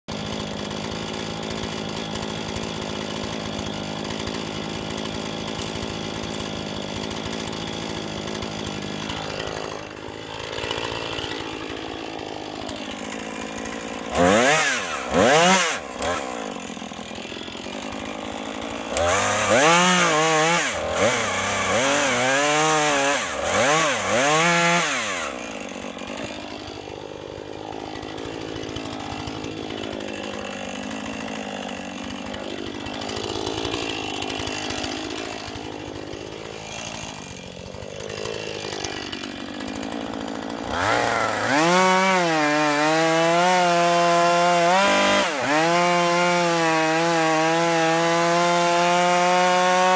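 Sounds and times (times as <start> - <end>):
chainsaw idling and revving: 0.0 - 49.9.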